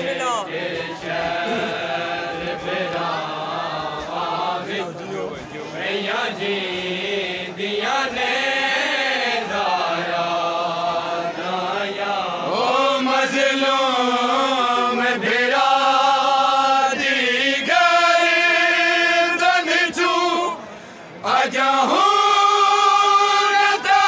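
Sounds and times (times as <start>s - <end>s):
men chanting a lament in unison: 0.0s - 24.0s.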